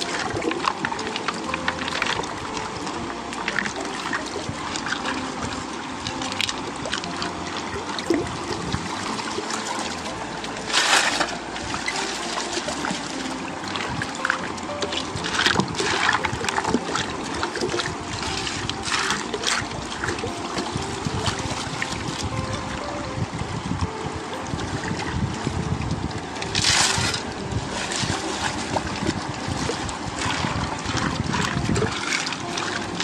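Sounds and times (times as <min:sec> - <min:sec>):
water sloshing in gold pan: 0:00.0 - 0:22.4, 0:26.4 - 0:33.0
sharp water splashes: 0:00.0 - 0:22.9, 0:24.5 - 0:33.0.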